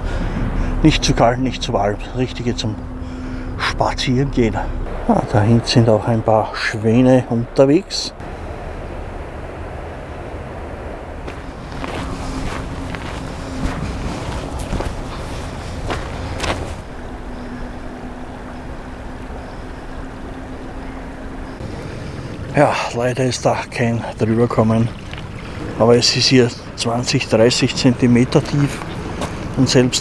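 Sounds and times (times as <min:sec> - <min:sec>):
distant engine hum: 0:00.0 - 0:30.0
steady outdoor rumble: 0:00.0 - 0:30.0
footsteps crunching: 0:11.2 - 0:17.0, 0:28.4 - 0:29.6.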